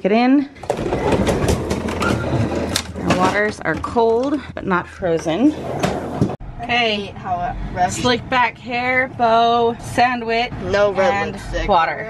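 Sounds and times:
freezer drawer rolling rattle: 0.6s - 4.3s, 5.6s - 6.4s.

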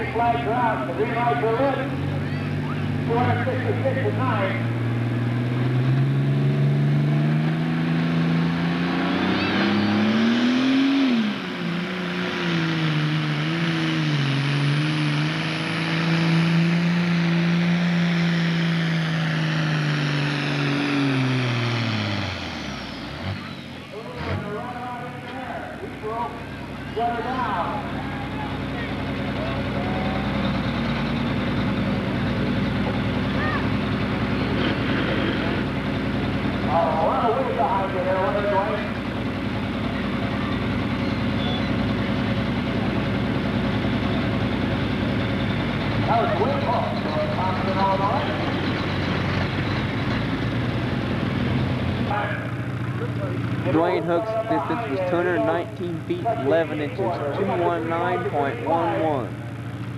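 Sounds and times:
low engine rumble: 0.0s - 59.9s
tractor diesel engine at full throttle: 0.0s - 59.9s.

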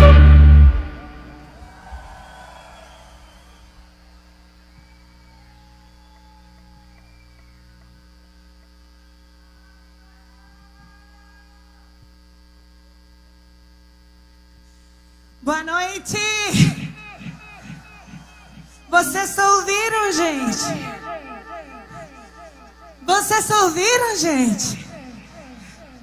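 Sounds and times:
band music: 0.0s - 1.4s
electrical mains hum: 0.0s - 26.0s
faint shouts: 1.4s - 3.6s, 9.5s - 12.0s, 15.5s - 23.7s.

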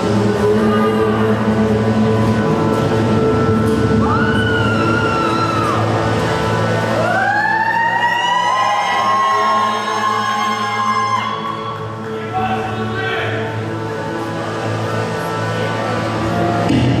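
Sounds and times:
steady low drone: 0.0s - 8.7s.

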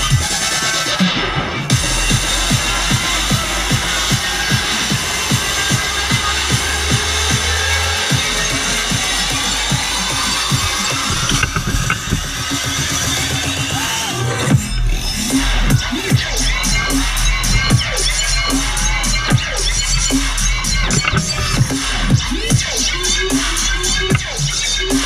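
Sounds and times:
dubstep music over sound system: 0.0s - 25.0s.

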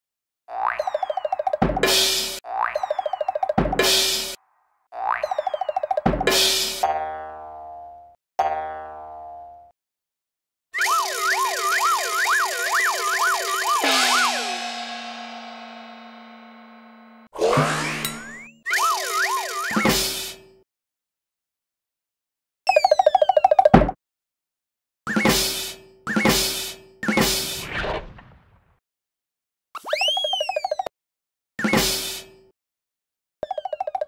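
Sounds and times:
cartoon springy boings: 0.5s - 4.3s, 4.9s - 9.6s, 10.8s - 15.5s, 17.4s - 20.0s, 22.7s - 24.0s, 29.8s - 30.9s, 33.4s - 34.0s
falling slide tones: 10.8s - 16.2s.

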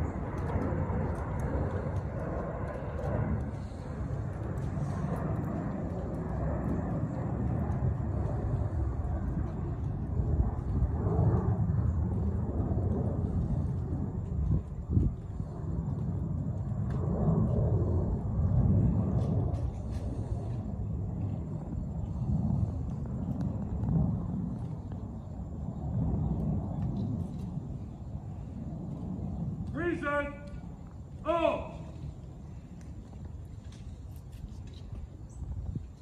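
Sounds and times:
low outdoor rumble: 0.0s - 36.0s.

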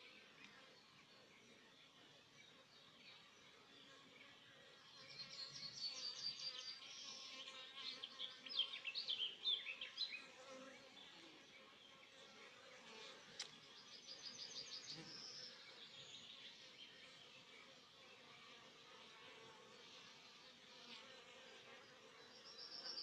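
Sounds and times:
songbird singing: 4.9s - 10.3s, 13.4s - 17.0s, 22.2s - 23.0s.

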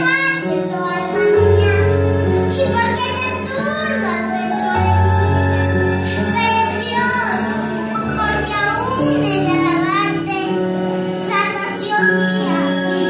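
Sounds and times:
girl singing: 0.0s - 5.3s, 6.1s - 13.0s.

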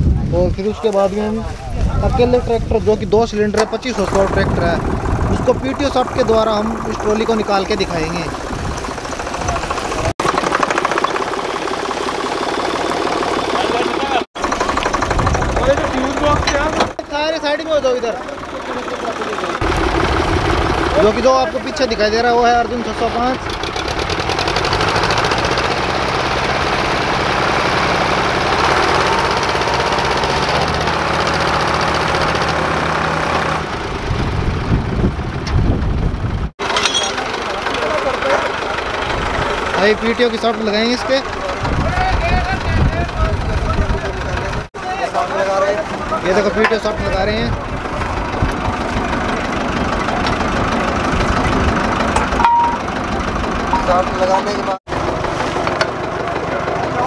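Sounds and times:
diesel tractor engine idling: 2.3s - 57.0s.

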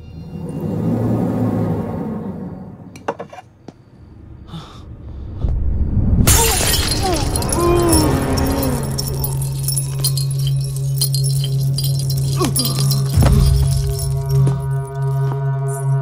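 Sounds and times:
film score drone: 0.0s - 6.3s, 12.8s - 16.0s
glass bottle smashing: 6.3s - 15.8s
clinks of falling glass: 6.3s - 15.9s.

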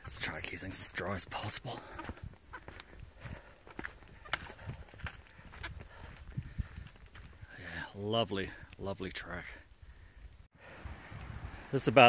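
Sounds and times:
footsteps on wet dirt trail: 0.0s - 7.9s.

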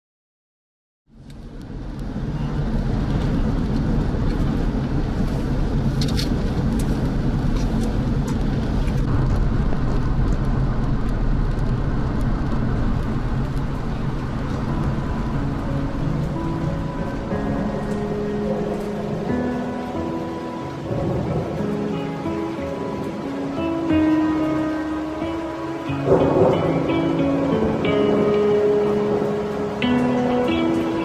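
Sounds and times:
steady rushing noise: 1.1s - 31.0s
steady musical notes: 13.0s - 31.0s.

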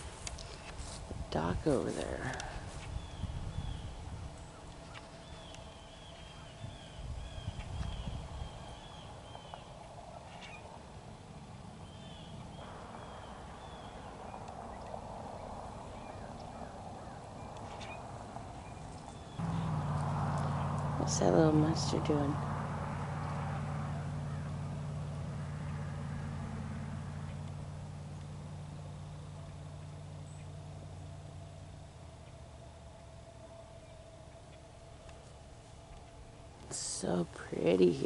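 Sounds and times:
low rumble: 0.0s - 38.0s
low steady motor hum: 0.0s - 38.0s
gulls calling: 2.8s - 32.6s.

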